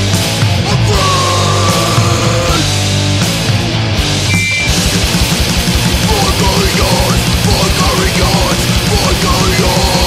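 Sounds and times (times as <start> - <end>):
hardcore punk band playing: 0.0 - 10.0
short high-pitched tone: 4.3 - 4.8.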